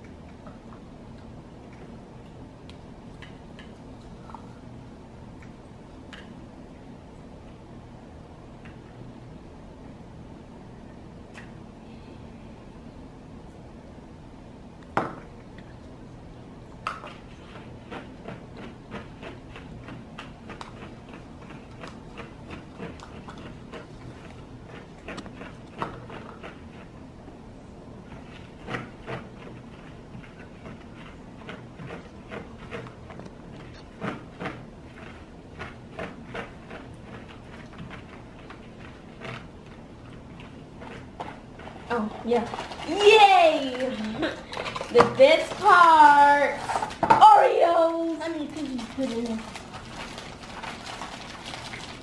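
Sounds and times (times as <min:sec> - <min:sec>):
faint steady hum: 0:00.0 - 0:52.0
plastic cutlery scraping cups: 0:41.2 - 0:45.8.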